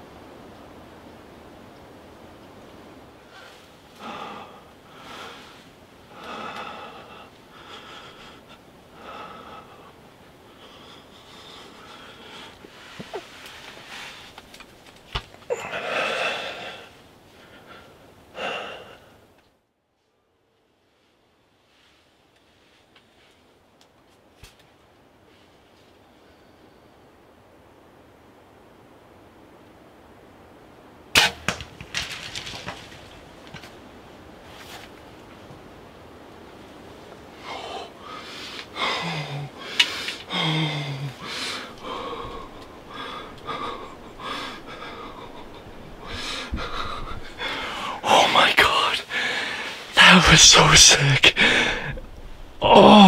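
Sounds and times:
arrow hitting deer: 31.2 - 32.9
bow release crack: 31.2 - 32.9
deer crashing through dry brush: 31.2 - 33.8
person breathing through nose: 37.4 - 48.1, 48.7 - 49.9, 51.4 - 52.0
man speaking: 47.9 - 49.3, 50.0 - 52.0, 52.6 - 53.0.

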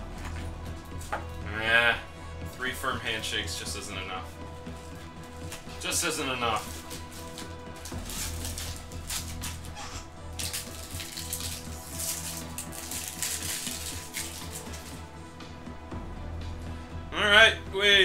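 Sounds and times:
quiet background music: 0.0 - 18.0
foil wrapper crinkling: 4.9 - 15.1.

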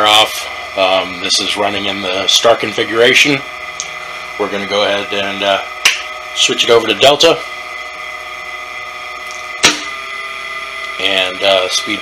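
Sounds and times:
electric motor humming: 0.0 - 12.0.

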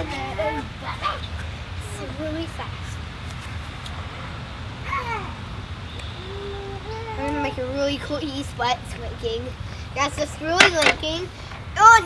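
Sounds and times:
wordless vocal exclamations: 6.2 - 7.6.

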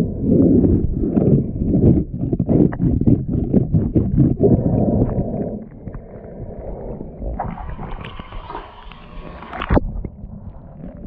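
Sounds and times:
low rumble of water: 0.0 - 11.0
underwater scraping and knocking: 0.0 - 11.0.

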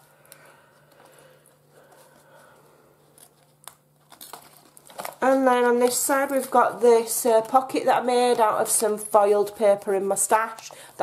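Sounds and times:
paper pages rustling: 3.0 - 11.0.

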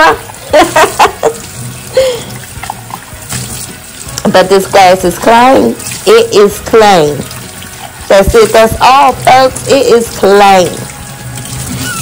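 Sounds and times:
glass squeaking when rubbed: 11.7 - 12.0.

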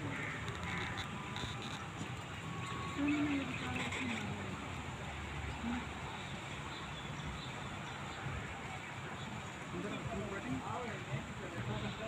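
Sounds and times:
faint distant voices: 0.0 - 12.0
outdoor background noise: 0.0 - 12.0.

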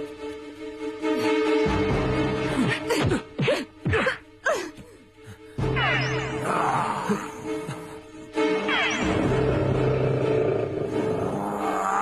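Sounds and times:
tiger roaring: 9.2 - 12.0.

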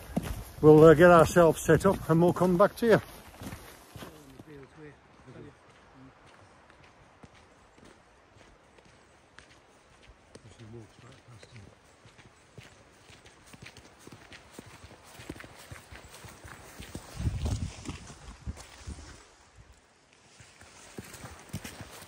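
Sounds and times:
boots crunching on gravel: 0.0 - 4.7, 11.2 - 19.2, 20.6 - 22.0.

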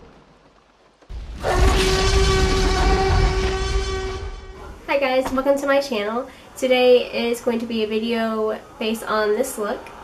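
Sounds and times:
low rumble: 1.1 - 4.9
steady horn-like tone: 1.1 - 4.9.

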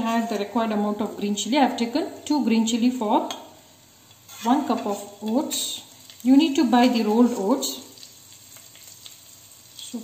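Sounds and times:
seeds and chillies sizzling in oil: 0.0 - 10.0.

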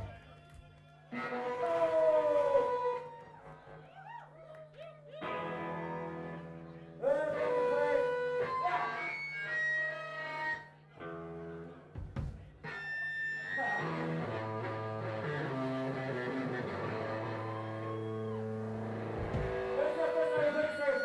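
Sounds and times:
live rock band: 12.2 - 21.0.

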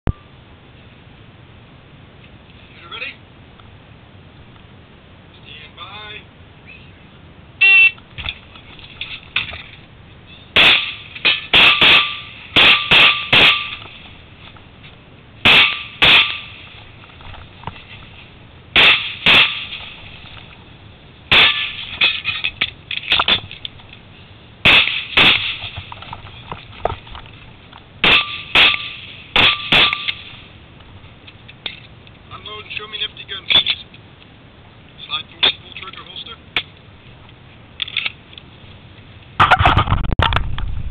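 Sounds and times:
pistol shots: 10.6 - 13.8, 15.4 - 16.5, 18.8 - 19.8, 24.6 - 25.7, 28.0 - 30.2.

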